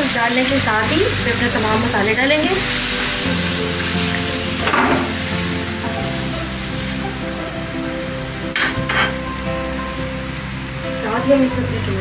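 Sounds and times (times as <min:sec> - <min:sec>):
background music with sustained chords: 0:00.0 - 0:12.0
sausage sizzling in a frying pan: 0:00.0 - 0:12.0.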